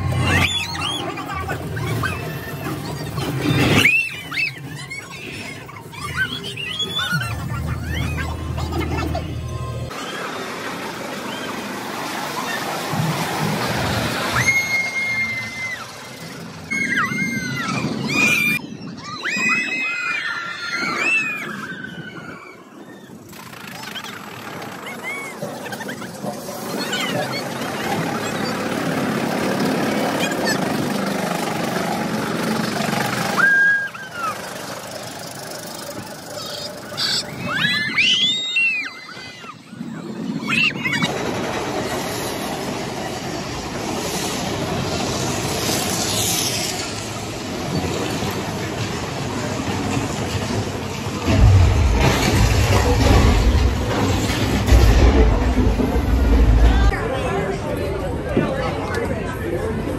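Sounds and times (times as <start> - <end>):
riders screaming and whooping: 0.0 - 55.6
roller coaster rattling on track: 0.0 - 59.9
loud deep rumble: 50.0 - 58.3.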